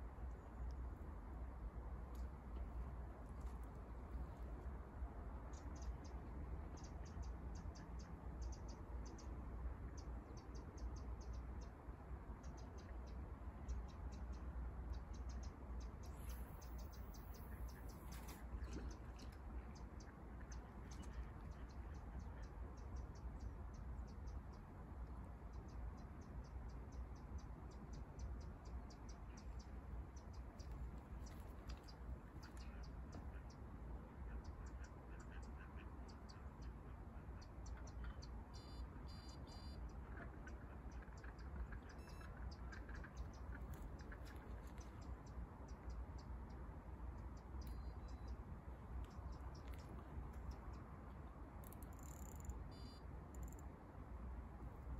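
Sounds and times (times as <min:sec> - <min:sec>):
steady low rumble: 0:00.0 - 0:39.1, 0:39.7 - 0:54.9.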